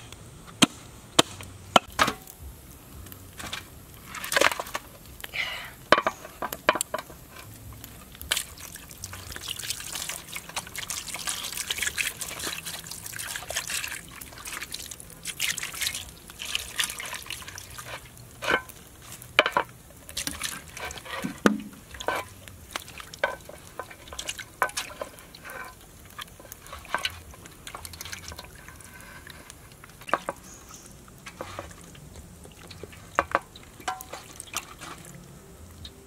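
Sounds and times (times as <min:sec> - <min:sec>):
water sloshing and splashing: 0:08.0 - 0:30.4, 0:31.0 - 0:35.4
water pouring into metal basin: 0:08.2 - 0:18.7, 0:20.1 - 0:29.4.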